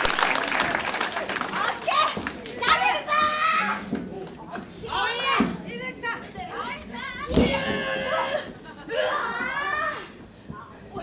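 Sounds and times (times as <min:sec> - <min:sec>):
women shouting and yelling: 0:04.9 - 0:10.2.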